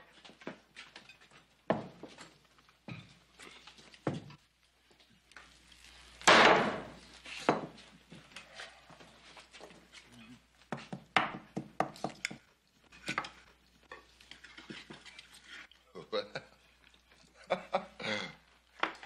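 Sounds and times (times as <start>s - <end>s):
knife and fork scraping plate: 12.9s - 15.7s.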